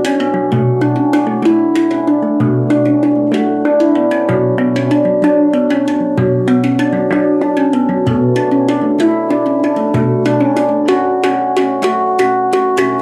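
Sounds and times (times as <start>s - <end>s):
handpan played with fingers: 0.0s - 13.0s.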